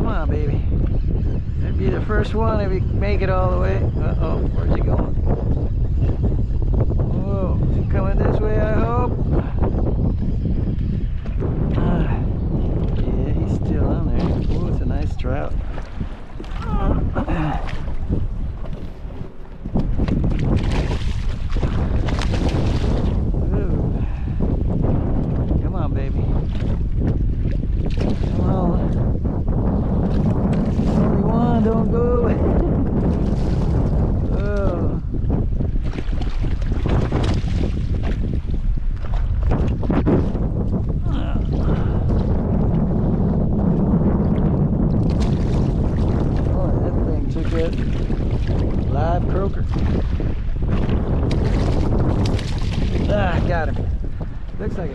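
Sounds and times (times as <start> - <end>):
wind blowing across microphone: 0.0 - 54.9.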